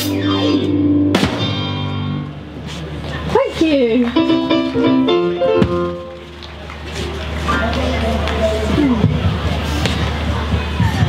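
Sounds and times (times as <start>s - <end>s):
live band through a pa: 0.0s - 11.0s.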